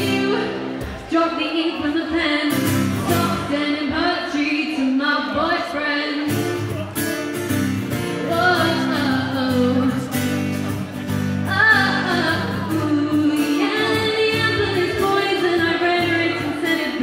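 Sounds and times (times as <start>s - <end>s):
woman singing: 0.0s - 6.5s, 8.1s - 17.0s
acoustic guitar: 0.0s - 17.0s.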